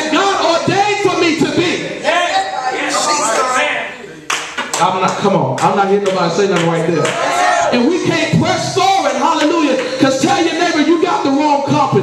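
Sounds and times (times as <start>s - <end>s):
voices calling out: 0.0s - 4.2s
congregation clapping: 4.2s - 11.1s.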